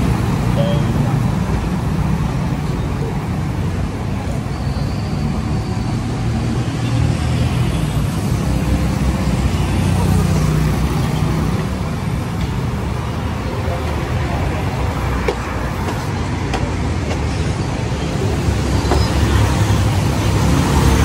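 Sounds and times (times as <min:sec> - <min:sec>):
car and motorcycle engines passing: 0:19.3 - 0:21.0.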